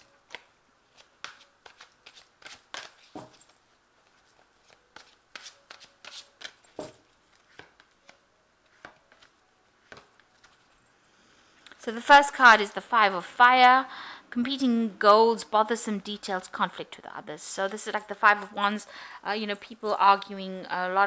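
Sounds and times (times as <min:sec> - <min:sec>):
cards being shuffled: 0:00.3 - 0:10.8.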